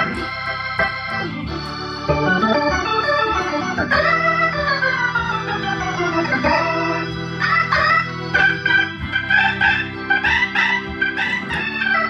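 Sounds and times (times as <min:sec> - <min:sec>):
organs playing: 0:00.0 - 0:12.0.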